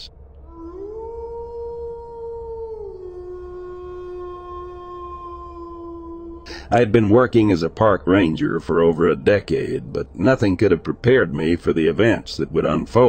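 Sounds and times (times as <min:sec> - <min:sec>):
long howl: 0:00.4 - 0:06.7.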